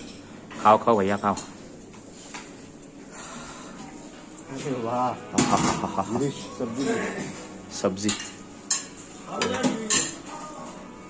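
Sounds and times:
metal spoons clinking on dishes: 5.4s - 10.4s.

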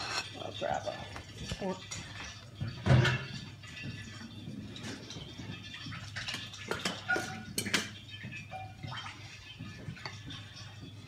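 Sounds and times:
dishes and utensils clinking: 0.0s - 11.0s
low kitchen background: 0.0s - 11.0s.

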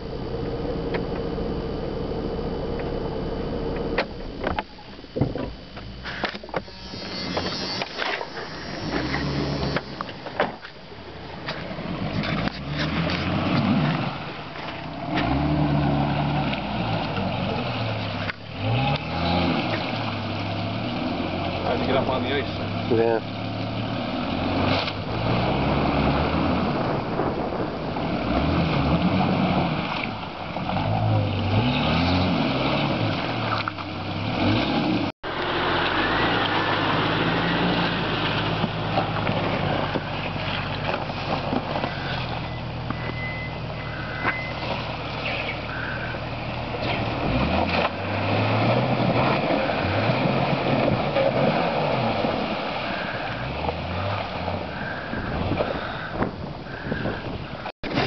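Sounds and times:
car engine revving: 5.8s - 57.1s.

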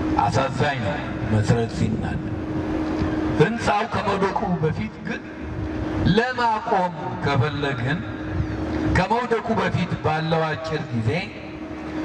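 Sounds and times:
steady low hum: 0.0s - 12.0s
man preaching: 0.2s - 2.2s, 3.4s - 5.3s, 6.1s - 8.1s, 8.9s - 11.4s.

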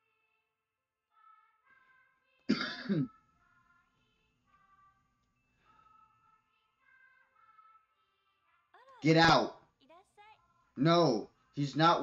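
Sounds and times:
person clearing throat: 2.5s - 3.2s.

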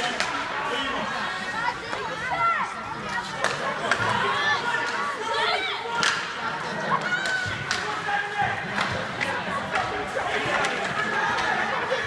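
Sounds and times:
spectators and players calling: 0.0s - 12.0s.

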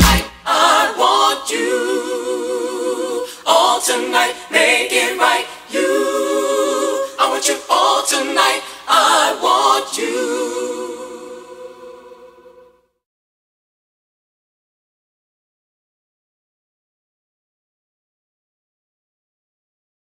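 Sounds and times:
a cappella layered voices singing: 0.0s - 13.0s.

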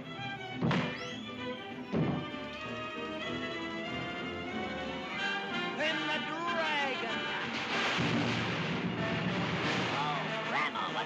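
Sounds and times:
orchestral cartoon music: 0.0s - 11.0s.

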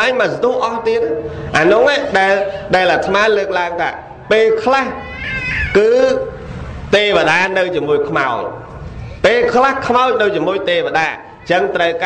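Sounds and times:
man preaching: 0.0s - 8.6s, 9.2s - 12.0s.

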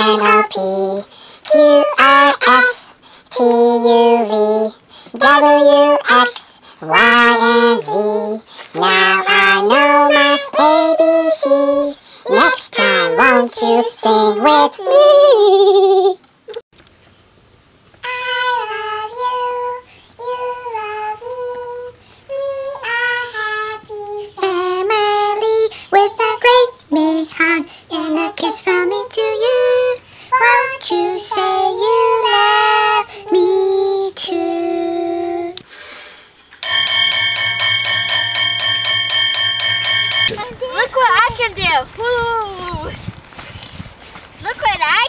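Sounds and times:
child singing: 0.0s - 16.2s, 18.0s - 35.6s
buzzing chord with fast flutter: 36.6s - 40.4s.

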